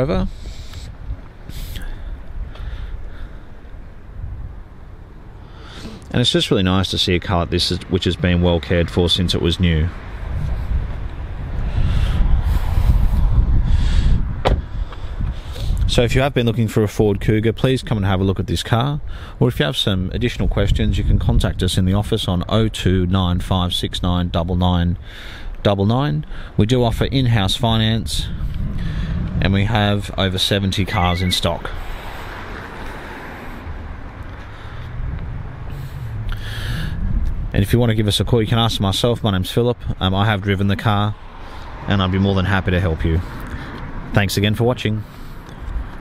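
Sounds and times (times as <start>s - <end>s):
road traffic rumble: 0.0s - 46.0s
microphone handling noise: 10.3s - 16.0s, 28.0s - 31.8s, 34.0s - 39.2s.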